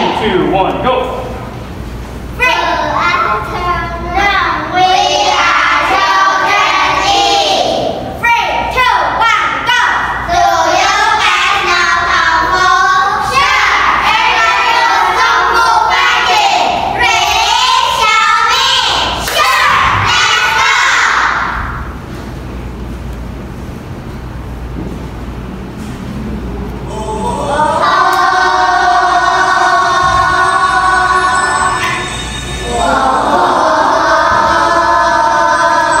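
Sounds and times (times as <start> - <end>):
children singing in unison: 4.6 - 7.9, 10.3 - 21.6, 26.9 - 36.0.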